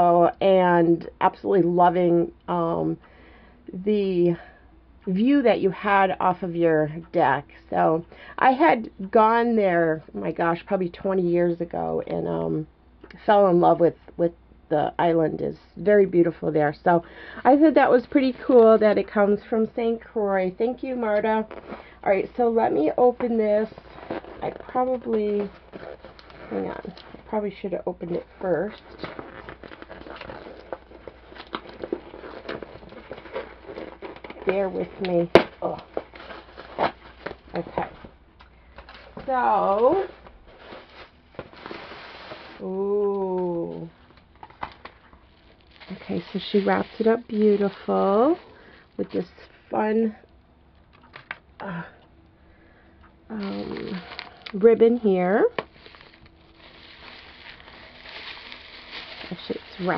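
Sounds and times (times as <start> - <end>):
packaging rustling and crinkling: 20.8 - 42.8, 43.4 - 49.6, 53.3 - 59.9.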